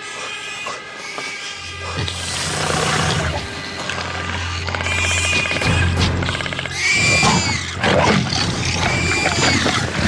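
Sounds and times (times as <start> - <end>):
low musical drone: 0.0 - 10.0.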